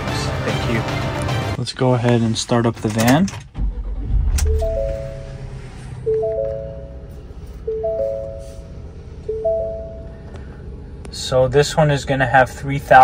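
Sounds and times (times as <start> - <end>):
car engine starting and idling: 0.0 - 13.0
three-note warning chime: 4.4 - 10.2.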